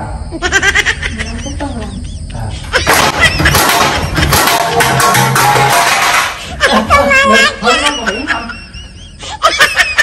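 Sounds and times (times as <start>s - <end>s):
person giggling: 0.3s - 4.5s, 6.4s - 10.0s.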